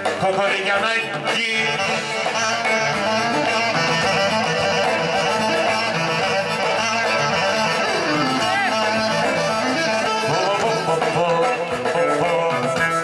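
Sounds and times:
live band dance music: 0:00.0 - 0:13.0.

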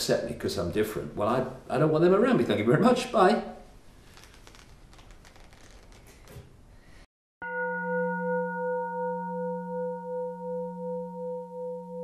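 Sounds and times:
deep bell-like tone ringing: 0:07.4 - 0:12.0.

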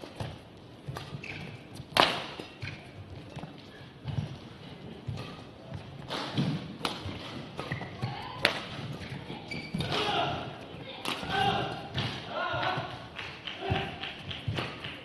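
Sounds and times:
shoes squeaking on court: 0:00.0 - 0:10.0
rackets striking shuttlecock: 0:00.9 - 0:02.9, 0:06.0 - 0:10.1, 0:11.0 - 0:12.8.

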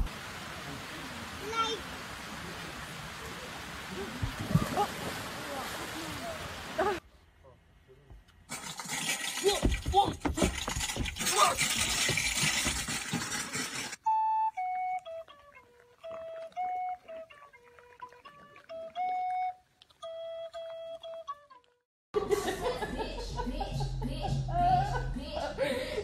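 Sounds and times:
flute-like melody: 0:14.0 - 0:21.8.

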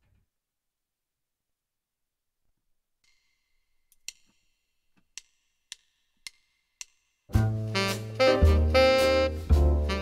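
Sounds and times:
wood-block-like count-in ticks: 0:03.0 - 0:07.4
jazz backing track: 0:07.3 - 0:10.0.

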